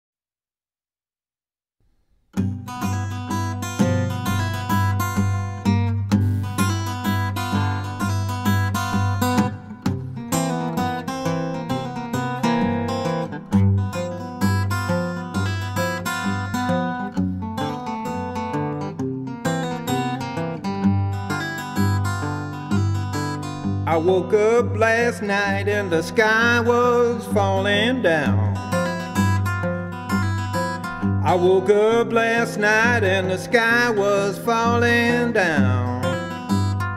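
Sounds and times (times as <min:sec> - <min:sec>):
fingerpicked acoustic guitar: 0:01.9 - 0:36.9
man singing: 0:23.8 - 0:29.5, 0:31.0 - 0:36.9.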